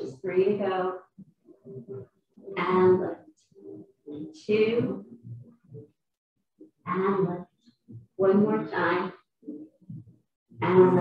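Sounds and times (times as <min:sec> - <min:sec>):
woman speaking: 0:00.0 - 0:01.0, 0:02.6 - 0:03.2, 0:04.3 - 0:05.0, 0:06.9 - 0:07.4, 0:08.2 - 0:09.1, 0:10.6 - 0:11.0.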